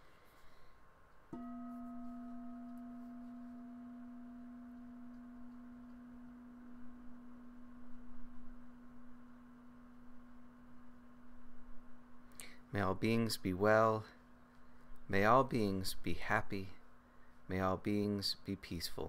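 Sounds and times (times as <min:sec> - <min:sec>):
singing bowl ringing: 0:01.3 - 0:11.8.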